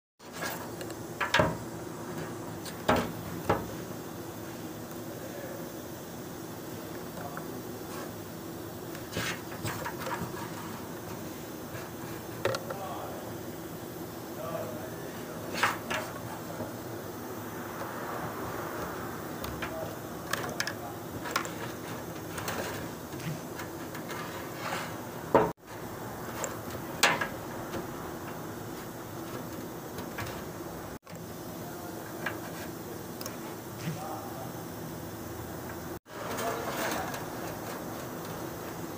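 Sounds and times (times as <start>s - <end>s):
steady background hum: 0.2s - 38.9s.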